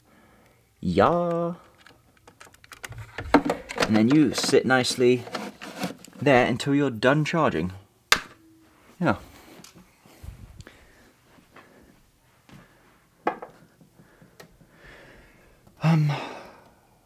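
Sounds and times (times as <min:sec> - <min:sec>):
camera handling clicks and knocks: 0:01.8 - 0:04.5.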